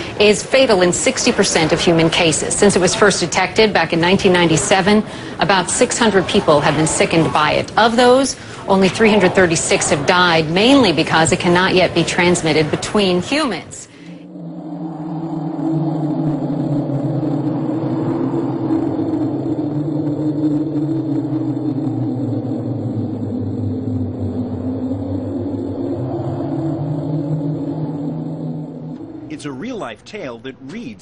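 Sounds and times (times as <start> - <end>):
low synthesizer drone: 0.0 - 31.0.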